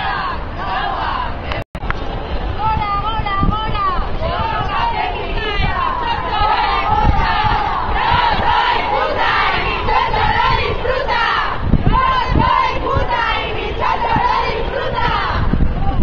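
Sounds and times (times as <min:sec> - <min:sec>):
crowd shouting slogans: 0:00.0 - 0:01.6, 0:03.8 - 0:15.9.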